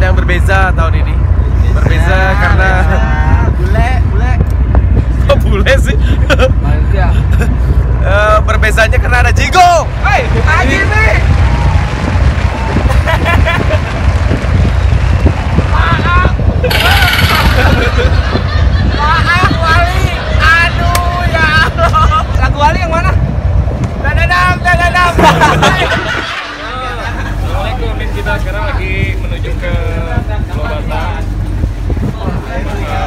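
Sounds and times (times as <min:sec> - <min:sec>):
boat engine rumble: 0:00.0 - 0:33.0
wind rumble: 0:00.0 - 0:33.0
man laughing: 0:12.9 - 0:13.9, 0:16.6 - 0:20.1, 0:25.2 - 0:27.4.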